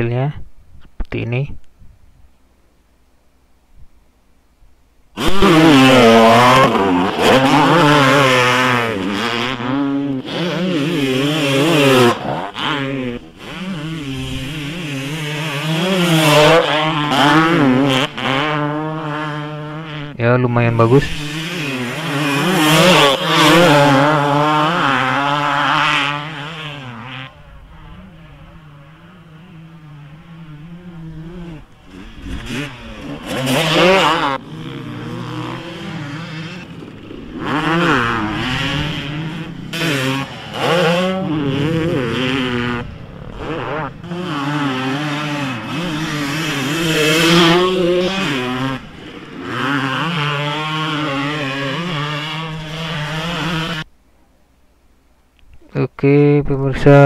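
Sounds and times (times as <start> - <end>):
dirt bike engine revving: 5.1 - 53.9.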